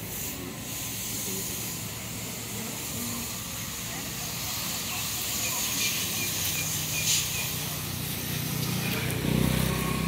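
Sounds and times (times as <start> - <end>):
steady hiss: 0.0 - 9.3.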